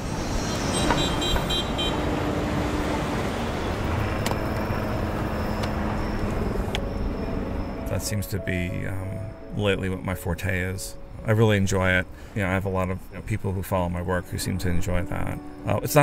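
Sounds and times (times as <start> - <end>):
street traffic: 0.0 - 16.0
car horn: 0.5 - 7.5.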